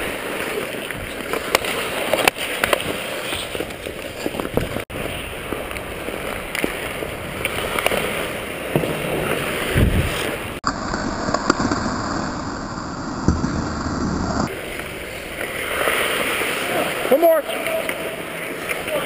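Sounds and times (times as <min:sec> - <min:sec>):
skates scraping on ice: 0:00.0 - 0:17.9.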